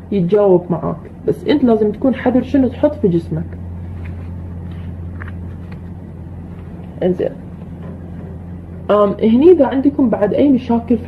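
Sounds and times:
low hum: 0.0s - 11.0s
speech: 0.1s - 3.6s, 7.0s - 7.4s, 8.9s - 11.0s.

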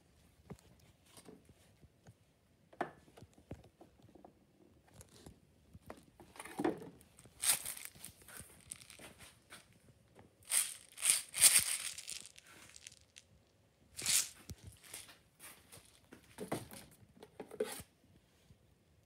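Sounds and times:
plastic bottles scraping and rustling: 6.2s - 9.2s, 10.5s - 13.2s, 14.0s - 15.2s.

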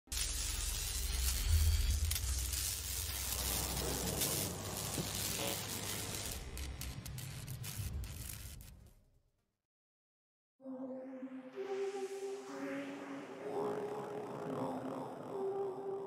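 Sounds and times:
hissing noise: 0.1s - 8.8s
crackles: 0.1s - 9.1s.

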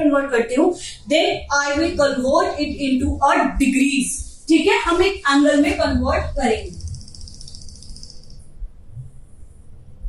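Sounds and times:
whiteboard marker squeaking: 6.6s - 8.4s.

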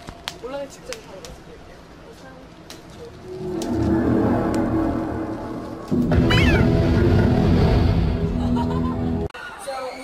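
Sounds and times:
loud low rumble: 3.2s - 8.6s.

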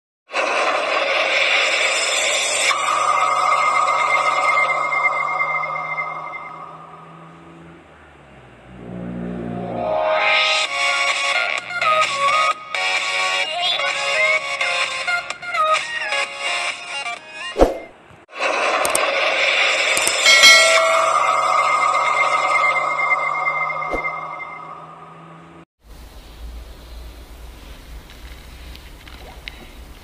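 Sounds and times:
bright swell with held high tone: 2.1s - 7.5s, 20.0s - 25.6s.

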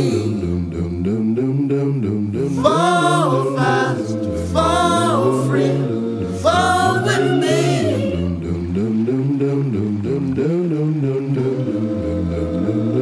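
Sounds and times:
a cappella singing: 0.0s - 13.0s.

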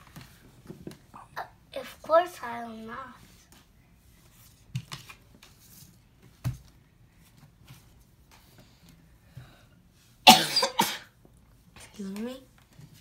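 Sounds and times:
child coughing: 10.3s - 11.2s.

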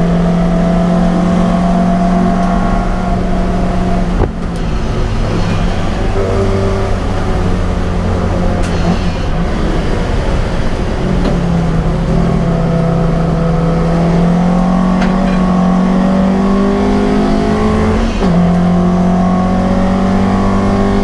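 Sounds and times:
car engine accelerating hard: 0.0s - 21.0s.

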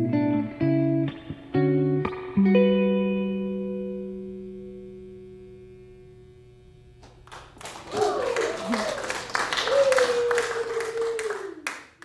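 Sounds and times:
electric guitar chord ringing out: 0.0s - 7.2s.

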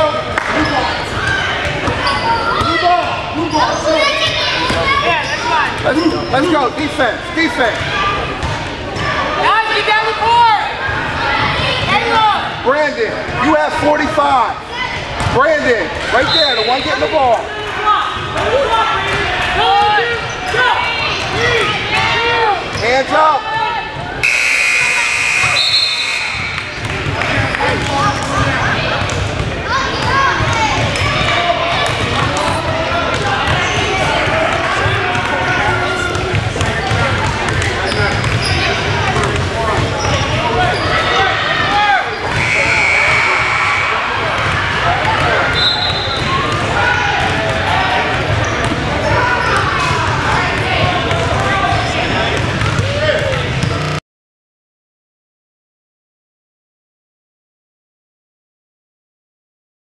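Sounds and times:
children and parents talking: 0.0s - 52.3s
scoreboard buzzer: 24.2s - 26.6s, 53.6s - 54.0s
basketballs bouncing on wooden floor: 36.1s - 40.2s, 52.4s - 54.0s.

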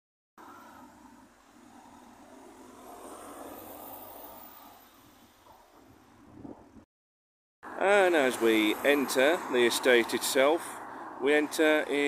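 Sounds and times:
car passing: 0.4s - 6.8s, 7.7s - 12.0s.

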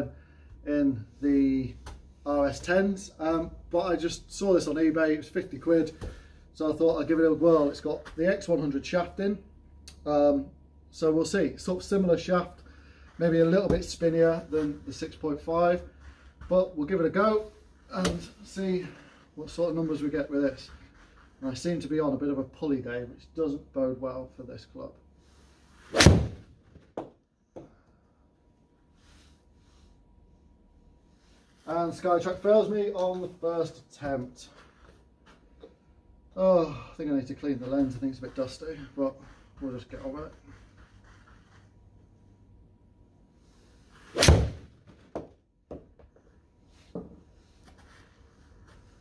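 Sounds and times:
golf club swish: 25.6s - 26.5s, 43.7s - 45.0s
golf iron striking ball: 25.9s - 26.5s
golf club striking ball: 26.0s - 26.5s, 44.2s - 44.7s.

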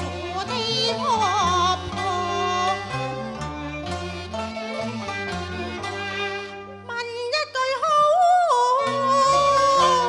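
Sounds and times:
instrumental accompaniment: 0.0s - 10.0s
person singing wavering vowel: 7.9s - 10.0s.

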